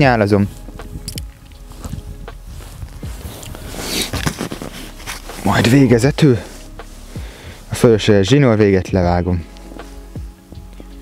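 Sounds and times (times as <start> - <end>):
waterproof jacket rustling: 0.0 - 8.6, 9.4 - 11.0.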